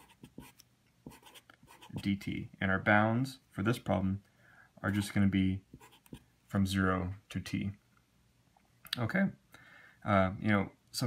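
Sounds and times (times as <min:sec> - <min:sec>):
felt-tip marker writing on paper: 0:00.0 - 0:02.1.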